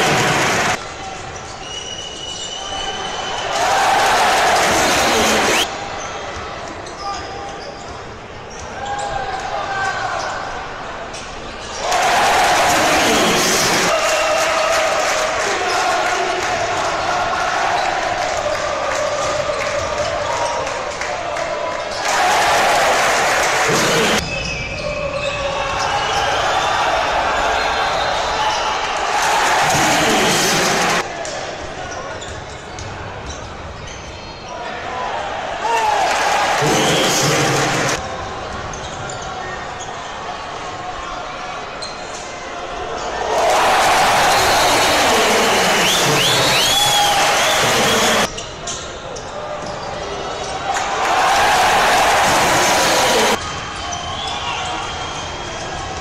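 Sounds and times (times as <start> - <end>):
voices in arena: 0.0 - 56.0.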